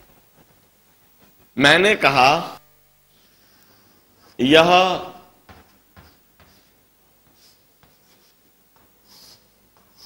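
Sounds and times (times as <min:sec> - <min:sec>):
chalk scratching on blackboard: 0:06.0 - 0:08.4, 0:09.0 - 0:10.0.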